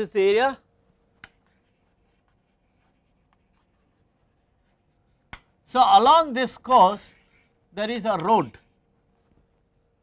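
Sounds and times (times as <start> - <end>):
chalk scratching on blackboard: 1.2 - 7.5.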